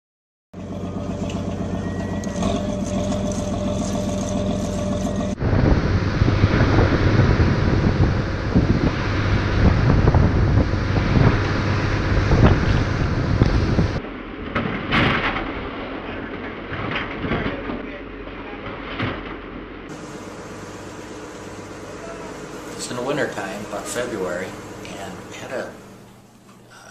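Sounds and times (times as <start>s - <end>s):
boat engine droning: 0.6s - 26.9s
wind: 0.6s - 26.9s.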